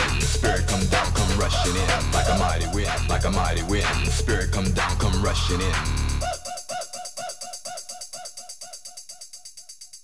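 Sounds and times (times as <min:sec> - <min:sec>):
electronic dance track: 0:00.0 - 0:09.5.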